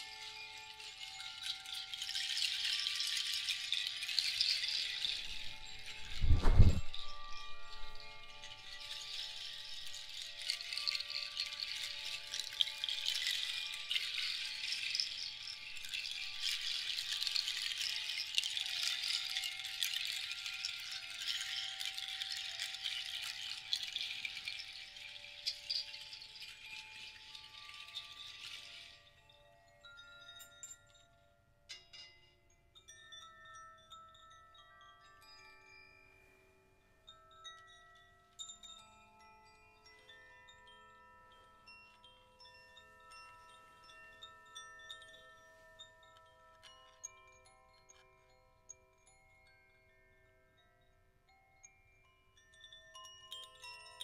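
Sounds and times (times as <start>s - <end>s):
seed-pod rattle shaking: 0.0s - 29.3s
tube chimes ringing: 0.0s - 36.3s.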